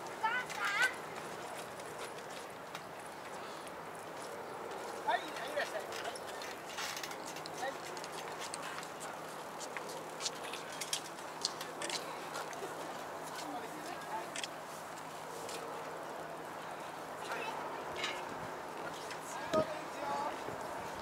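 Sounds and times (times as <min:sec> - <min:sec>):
distant people's voices: 0:00.0 - 0:21.0.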